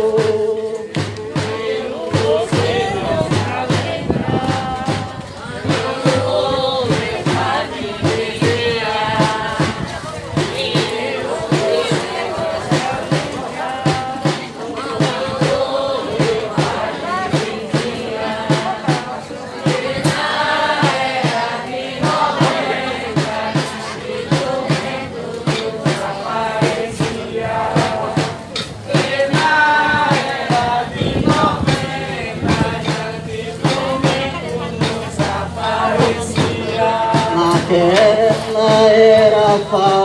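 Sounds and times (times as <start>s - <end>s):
group singing a folk song: 0.0s - 40.0s
steady percussive beat: 0.0s - 40.0s.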